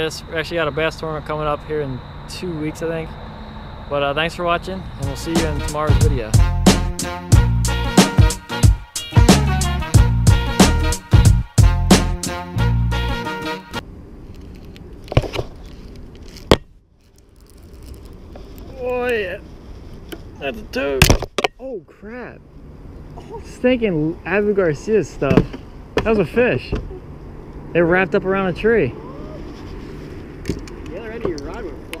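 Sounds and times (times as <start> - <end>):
person speaking indistinctly: 4.9 - 6.4.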